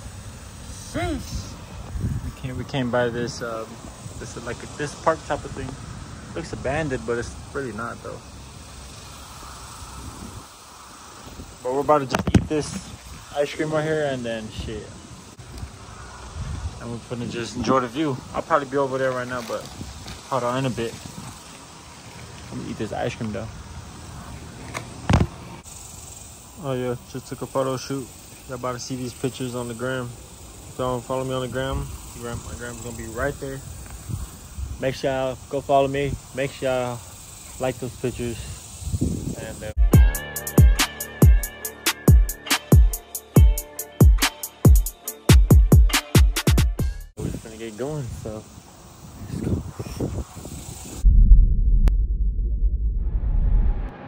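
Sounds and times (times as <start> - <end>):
low rumbling whoosh: 49.6 - 54.0.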